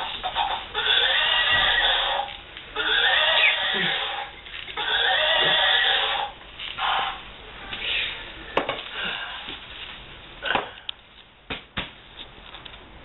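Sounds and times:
horse whinnying: 0.7s - 2.2s, 2.8s - 6.3s.

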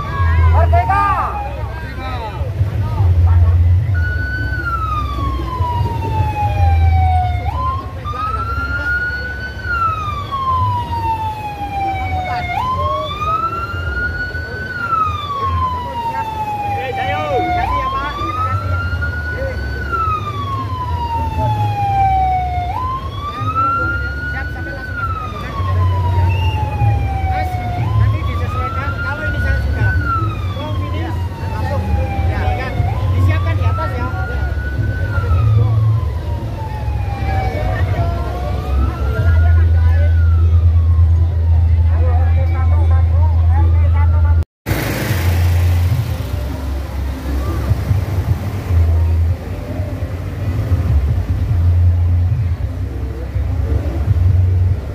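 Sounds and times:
siren wailing: 0.0s - 2.4s, 3.6s - 50.0s.

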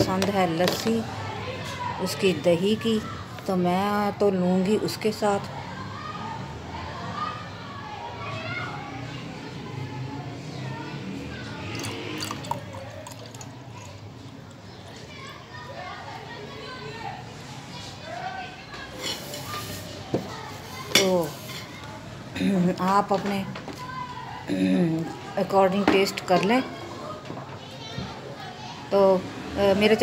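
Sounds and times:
children talking and playing: 0.0s - 30.0s.

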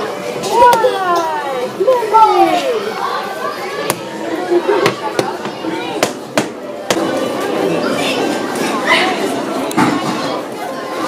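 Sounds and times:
chatter of voices in hall: 0.0s - 11.0s.

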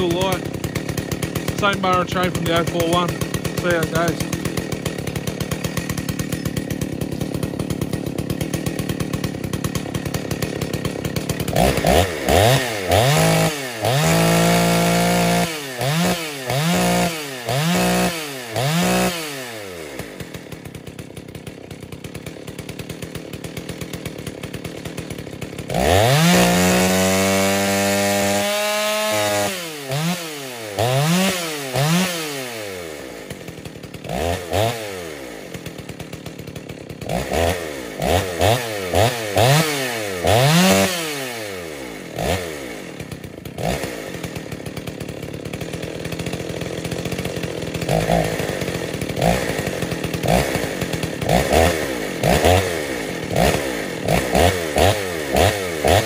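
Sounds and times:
chainsaw cutting log: 0.0s - 56.0s.

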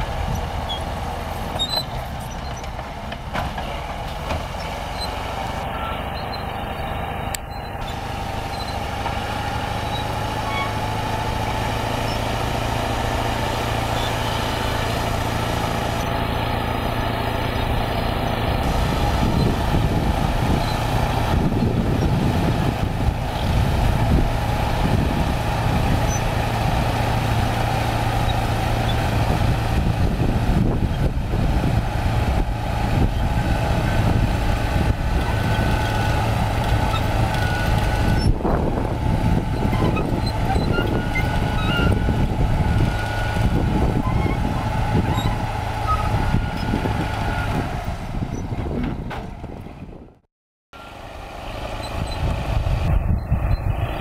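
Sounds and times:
bulldozer diesel engine running: 0.0s - 54.0s.

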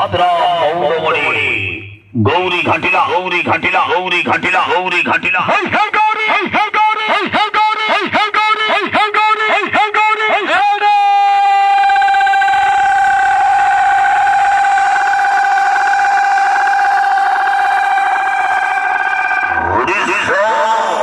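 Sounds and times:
announcer's voice over loudspeakers: 0.0s - 12.4s, 19.6s - 21.0s.

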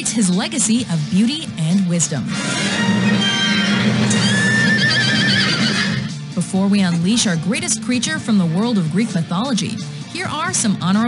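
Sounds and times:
horse whinnying: 2.3s - 6.1s.

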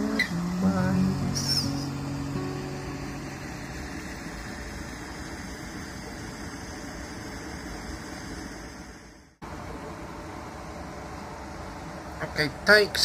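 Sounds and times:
river water rushing over weir: 0.0s - 13.0s.

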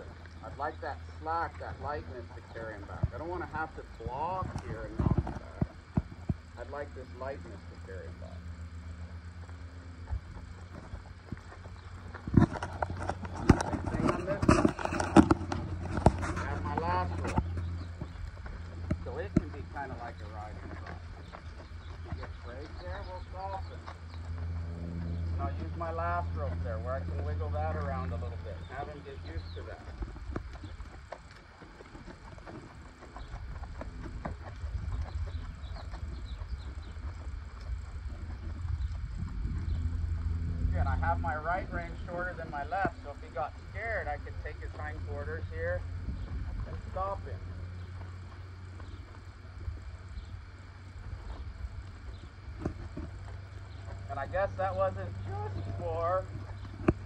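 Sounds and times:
horse hooves on sand: 0.0s - 57.0s
steady low hum: 0.0s - 57.0s
wind rumble on microphone: 1.7s - 57.0s.

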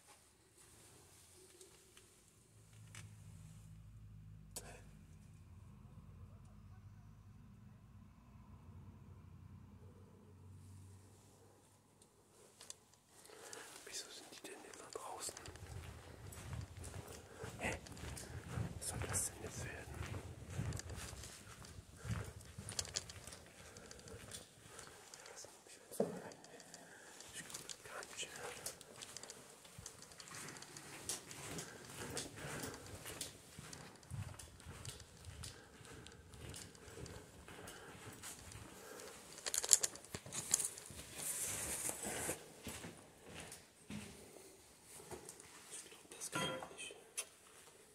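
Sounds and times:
person whispering: 4.5s - 5.0s, 12.6s - 38.1s, 45.6s - 47.2s
footsteps: 12.4s - 46.7s.

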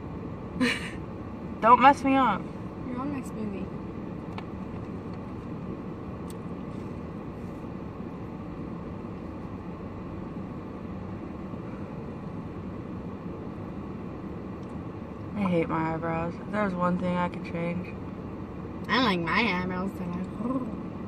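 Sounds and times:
car cabin rumble: 0.0s - 21.0s.

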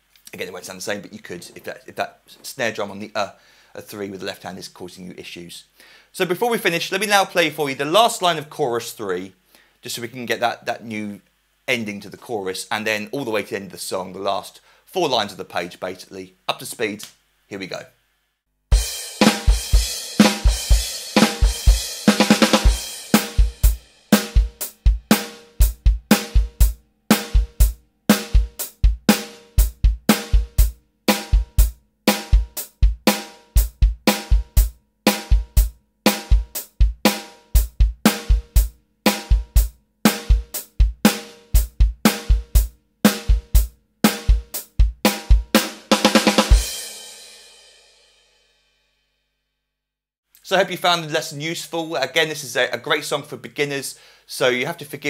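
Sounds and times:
electronic drum kit rock groove: 18.7s - 47.2s.

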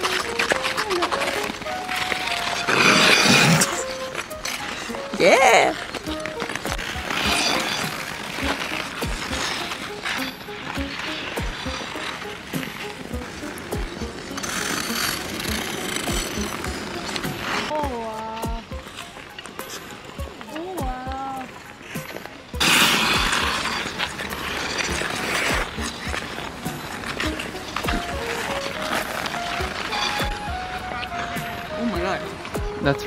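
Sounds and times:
skate blades scraping ice: 0.0s - 33.0s.

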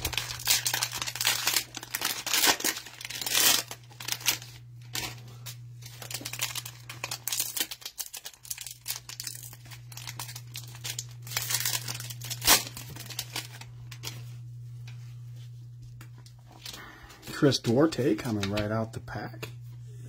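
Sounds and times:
plastic wrapper ripping: 0.0s - 14.3s
plastic wrapper crinkling: 0.0s - 14.5s, 15.8s - 18.8s
low hum: 0.0s - 20.0s.

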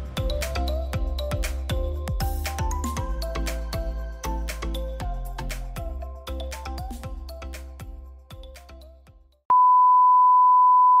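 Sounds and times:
background music: 0.0s - 9.4s.

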